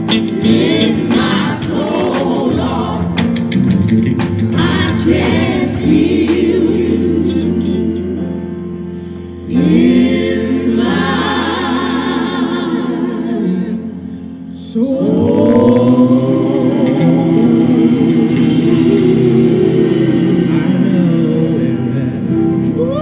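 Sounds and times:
choir of voices singing: 0.0s - 3.6s, 4.4s - 23.0s
piano: 0.0s - 23.0s.

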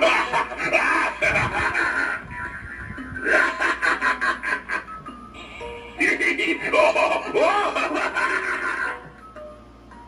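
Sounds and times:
menacing toy laugh: 0.0s - 5.1s, 6.0s - 9.2s.

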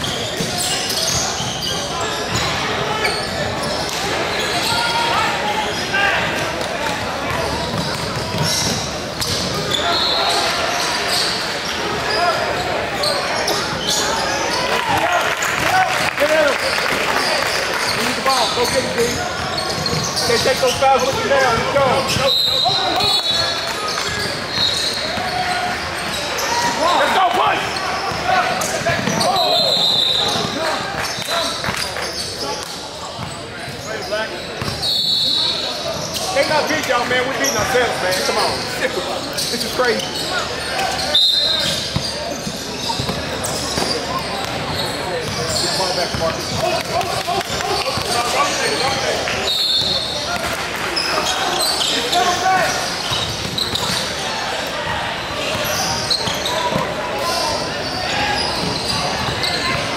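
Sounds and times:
people talking: 0.0s - 59.9s
sneakers squeaking: 0.0s - 59.9s.

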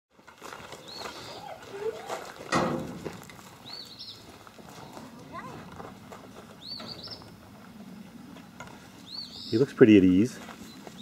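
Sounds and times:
hooves on gravel: 0.1s - 11.0s
bird chirping: 0.6s - 2.0s, 3.6s - 5.0s, 6.5s - 7.4s, 9.0s - 9.8s, 10.5s - 11.0s.

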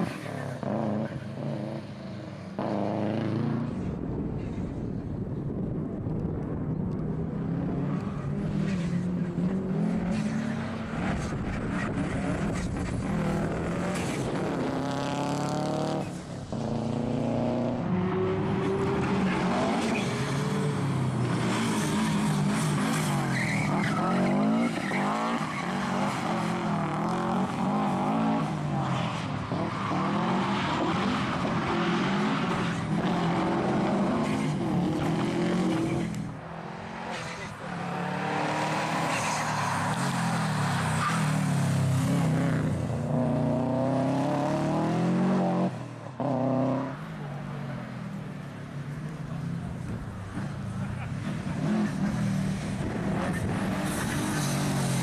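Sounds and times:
rally car engine revving: 7.4s - 47.0s.

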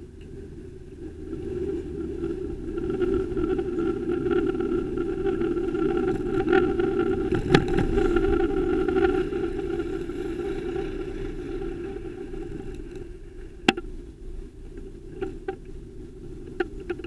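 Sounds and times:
traffic and riding rumble: 0.0s - 17.0s.

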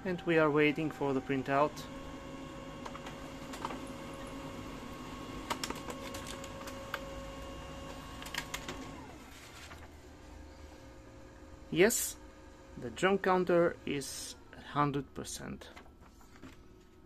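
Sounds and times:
printer motor whine: 0.0s - 14.6s
paper feed clicks: 2.8s - 3.9s, 5.3s - 9.9s.

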